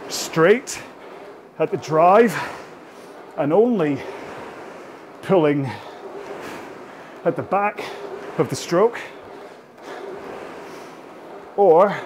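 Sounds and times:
rowing machine soft rushing: 0:00.0 - 0:12.0.

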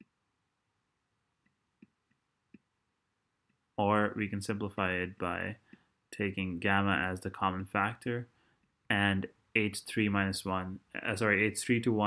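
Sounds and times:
man talking: 0:03.8 - 0:12.0.

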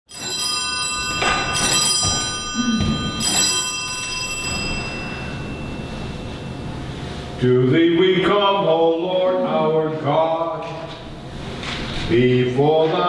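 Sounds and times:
bells ringing: 0:00.1 - 0:07.4.

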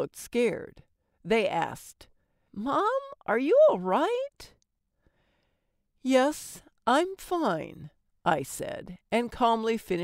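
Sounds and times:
woman narrating: 0:00.0 - 0:04.6, 0:06.0 - 0:10.0
short breath: 0:05.0 - 0:05.8.

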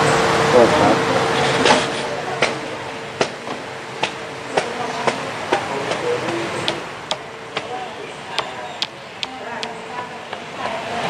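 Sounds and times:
sharp taps or knocks: 0:03.2 - 0:09.7.

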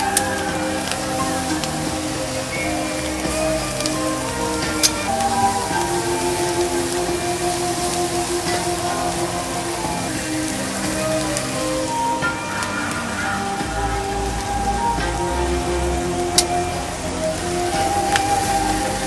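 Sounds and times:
background music with held notes: 0:00.0 - 0:19.0.

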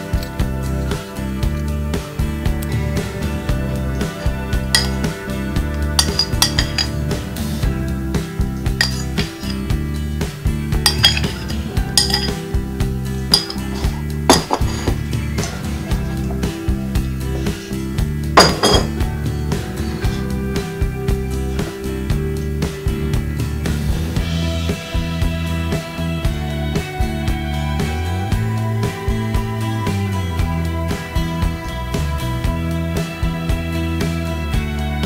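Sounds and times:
background music: 0:00.0 - 0:35.0
metal spoon clinking on ceramic bowl: 0:04.8 - 0:05.1, 0:06.0 - 0:06.9, 0:08.8 - 0:09.6, 0:10.8 - 0:12.4, 0:13.3 - 0:15.0, 0:18.4 - 0:19.0.

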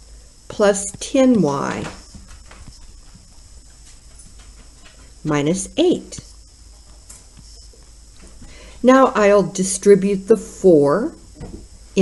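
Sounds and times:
steady low hum: 0:00.0 - 0:12.0
stylus tapping and scratching: 0:00.5 - 0:08.6.

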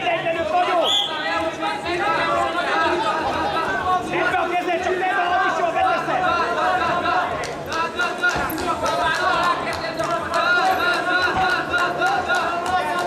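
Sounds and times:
people calling out and chattering: 0:00.0 - 0:13.0.

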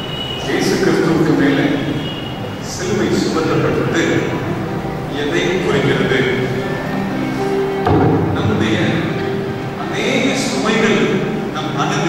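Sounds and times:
man preaching into a microphone: 0:00.4 - 0:04.4, 0:05.1 - 0:06.6, 0:08.2 - 0:12.0.

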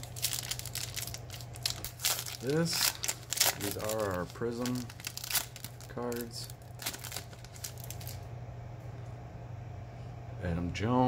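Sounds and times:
cards rustling: 0:00.0 - 0:08.2
foil wrapper crinkling: 0:00.0 - 0:08.3
steady low hum: 0:00.0 - 0:11.0.

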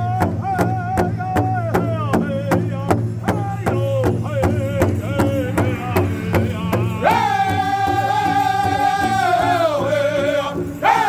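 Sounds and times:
powwow drum beating: 0:00.0 - 0:11.0
lead singer's high singing: 0:02.6 - 0:11.0.

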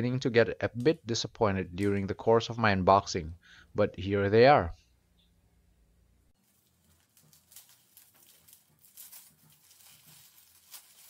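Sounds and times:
crumpled paper rustling: 0:06.4 - 0:11.0.

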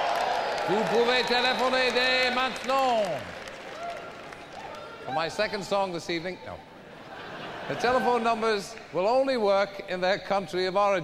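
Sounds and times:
audience applause: 0:00.0 - 0:05.3
man speaking: 0:00.7 - 0:03.3.

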